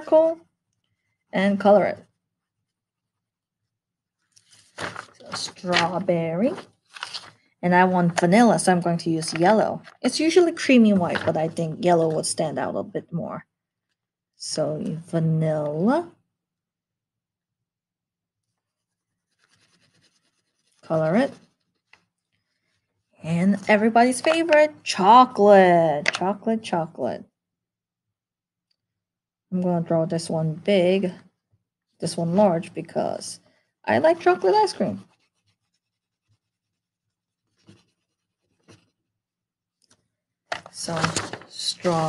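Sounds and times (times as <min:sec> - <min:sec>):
crayon scratching on paper: 0:18.4 - 0:21.9, 0:34.0 - 0:39.0.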